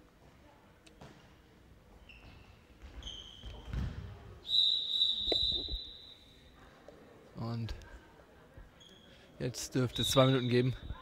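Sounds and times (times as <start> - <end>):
ball and players thudding on court: 2.2 - 4.2
referee's whistle blasts: 4.5 - 6.4.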